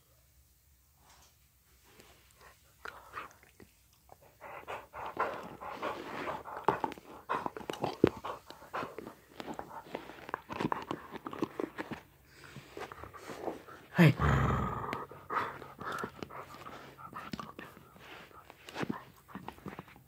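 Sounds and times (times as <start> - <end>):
dog making noisy clicking sounds: 2.8 - 12.1, 14.8 - 20.0.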